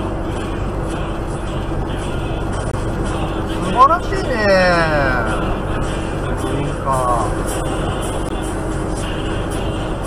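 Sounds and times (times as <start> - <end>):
vehicle cabin road drone: 0.0 - 10.0.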